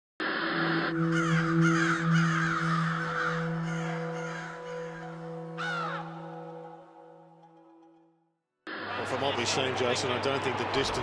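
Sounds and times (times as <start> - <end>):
low sustained synth chord: 0.5 - 8.3
crow cawing: 0.7 - 7.2.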